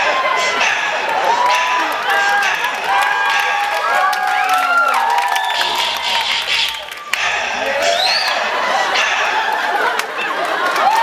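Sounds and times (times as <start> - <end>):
audience cheering and clapping: 0.0 - 11.0.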